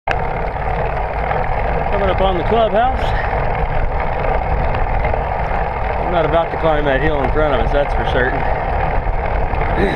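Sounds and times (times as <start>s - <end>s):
bicycle tyres rumbling on asphalt: 0.1s - 9.9s
wind buffeting microphone: 0.1s - 9.9s.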